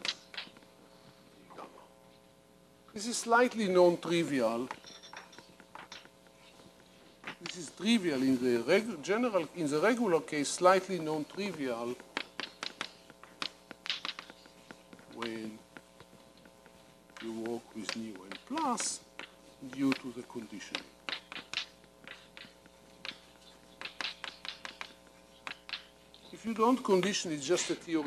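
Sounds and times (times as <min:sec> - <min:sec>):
steady hum: 0:00.0 - 0:28.0
chalk writing on a blackboard: 0:11.0 - 0:20.4, 0:21.2 - 0:26.1.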